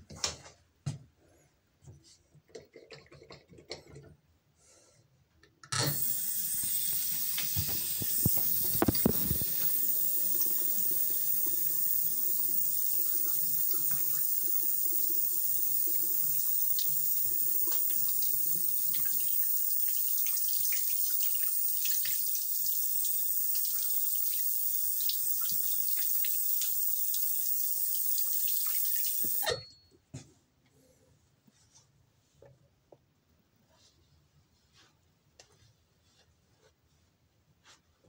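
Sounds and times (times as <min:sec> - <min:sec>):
tap water running into sink: 0:05.8 - 0:29.5
water splashes and drips: 0:15.8 - 0:29.4.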